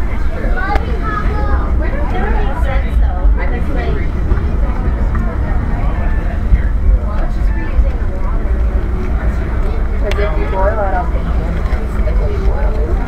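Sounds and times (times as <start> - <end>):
indistinct voices talking: 0.0 - 13.0
vehicle rumble from inside: 0.0 - 13.0.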